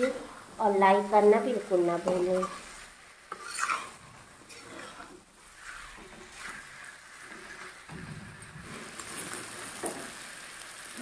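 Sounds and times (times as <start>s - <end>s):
metal spatula scraping pan: 2.0s - 9.9s.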